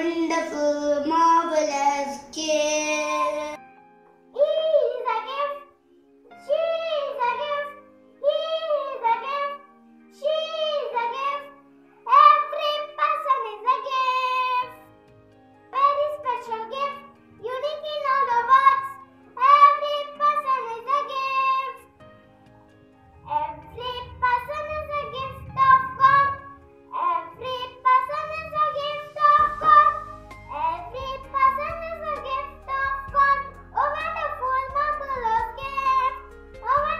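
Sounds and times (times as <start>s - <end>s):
child singing: 0.0s - 3.6s, 15.8s - 21.8s, 23.3s - 36.9s
keyboard backing track: 0.0s - 36.9s.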